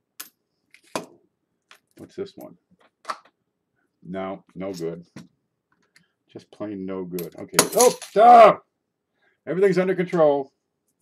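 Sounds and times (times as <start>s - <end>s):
coins clinking on hard surface: 7.2s - 8.4s.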